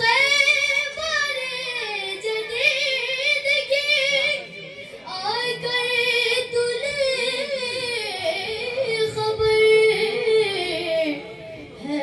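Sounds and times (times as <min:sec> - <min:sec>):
boy singing into a microphone: 0:00.0 - 0:12.0.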